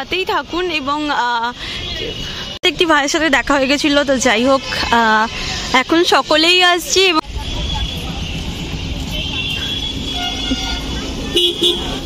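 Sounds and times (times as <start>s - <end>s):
road traffic rumble: 0.0s - 12.0s
faint vehicle horns tooting: 7.3s - 12.0s.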